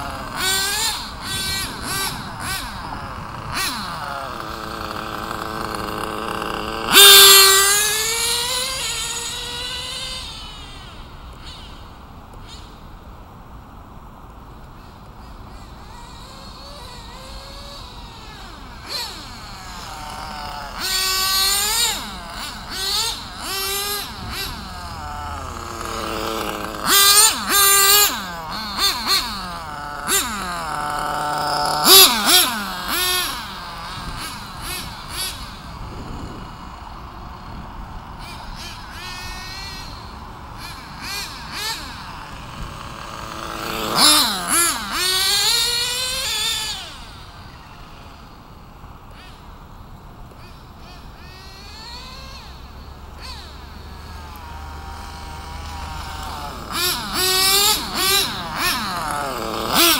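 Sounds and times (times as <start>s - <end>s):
radio-controlled car motor whining: 0.0s - 11.8s, 14.8s - 49.6s, 50.3s - 59.9s.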